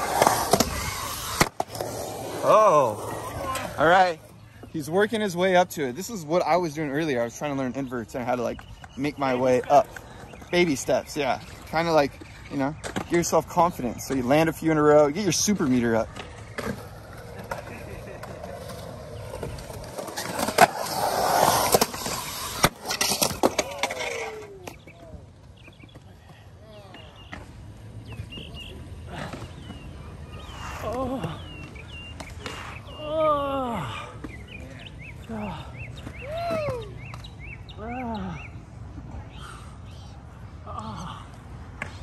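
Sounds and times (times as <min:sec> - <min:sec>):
skateboard wheels rolling on concrete: 0:00.0 - 0:40.7.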